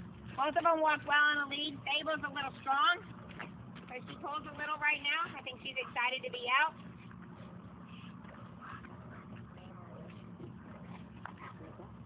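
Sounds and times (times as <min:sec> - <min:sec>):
low background hum: 0:00.0 - 0:12.0
dogs walking on gravel: 0:02.0 - 0:12.0.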